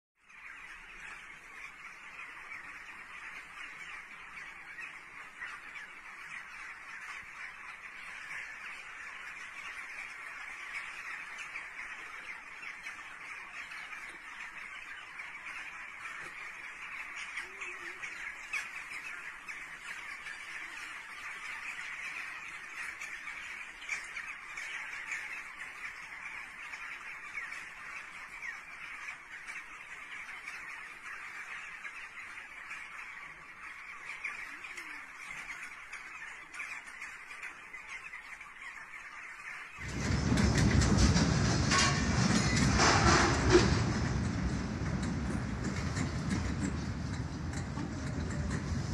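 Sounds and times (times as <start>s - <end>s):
flock of birds chattering: 0.2s - 48.9s
loud rough noise: 39.8s - 48.9s.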